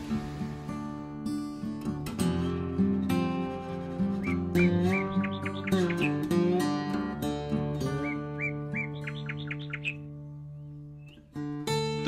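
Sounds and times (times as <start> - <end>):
acoustic guitar chord: 0.0 - 9.1
small bird chirping: 4.2 - 6.4, 7.8 - 11.3.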